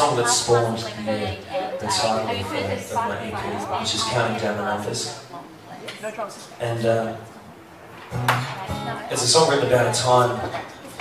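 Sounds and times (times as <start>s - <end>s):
acoustic guitar chord strummed: 7.9s - 10.4s.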